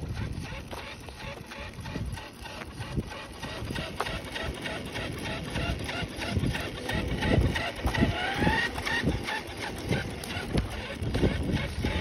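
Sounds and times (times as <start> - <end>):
rising motor whine: 0.0 - 12.0
toy truck tyres crunching on asphalt: 0.0 - 12.0.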